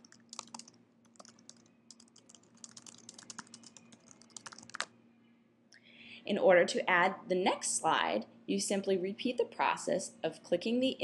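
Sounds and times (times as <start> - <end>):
computer keyboard typing: 0.0 - 4.9.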